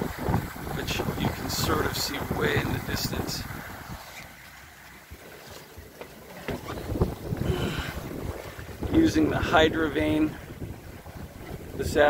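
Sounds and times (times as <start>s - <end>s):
wind buffeting microphone: 0.0s - 4.1s, 6.5s - 12.0s
water rushing along hull: 0.0s - 12.0s.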